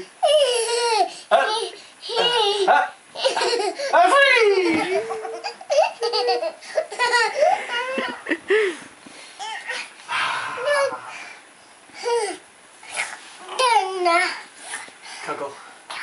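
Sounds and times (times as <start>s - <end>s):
toddler laughing: 0.2s - 8.4s.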